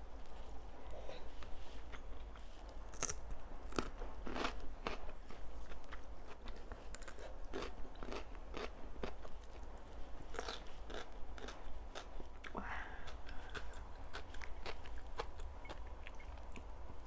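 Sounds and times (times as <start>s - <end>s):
crunching cucumber bites: 2.9s - 9.6s, 10.3s - 12.5s.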